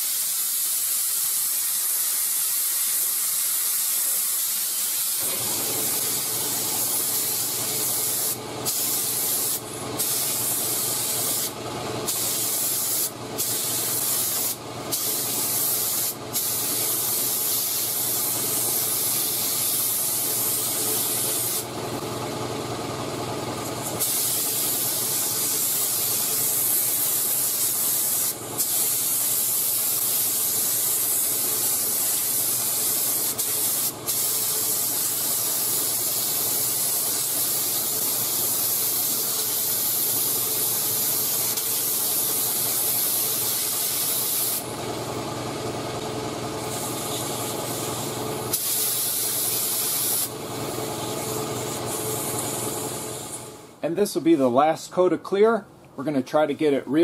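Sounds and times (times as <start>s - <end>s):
spray gun hissing: 0.0s - 21.7s, 23.8s - 44.7s, 46.6s - 53.5s.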